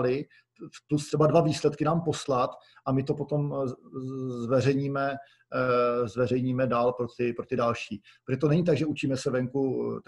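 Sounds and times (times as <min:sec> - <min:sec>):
person speaking: 0:00.0 - 0:10.0.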